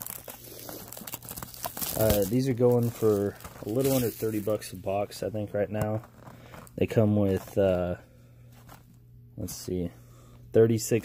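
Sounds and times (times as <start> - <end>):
plastic shrink-wrap crinkling: 0.0 - 5.2.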